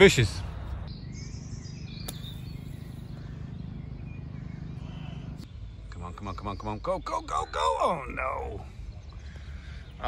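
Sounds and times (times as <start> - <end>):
faint bird chirps: 0.8 - 10.0
golf club striking sand: 2.0 - 3.2.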